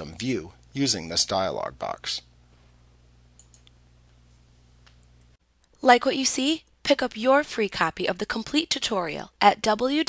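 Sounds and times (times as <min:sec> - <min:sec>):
low steady hum: 0:00.0 - 0:10.0
computer mouse clicks: 0:03.4 - 0:03.8.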